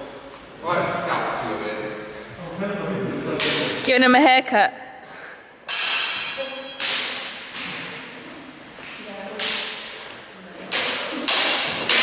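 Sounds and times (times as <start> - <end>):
steel swords clashing: 5.7 - 7.4.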